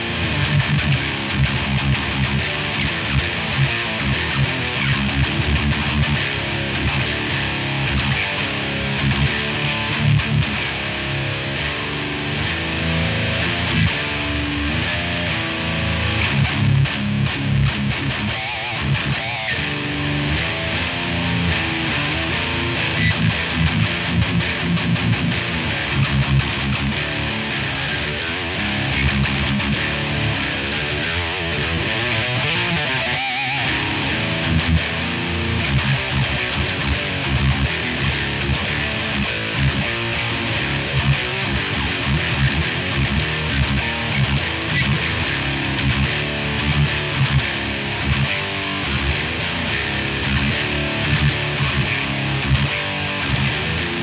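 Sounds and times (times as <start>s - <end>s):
distorted electric guitar riffs: 0.0s - 54.0s.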